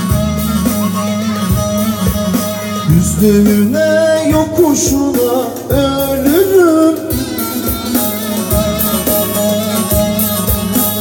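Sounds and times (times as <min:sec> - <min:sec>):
drum hits: 0:00.0 - 0:11.0
keyboard melody over bass notes: 0:00.0 - 0:11.0.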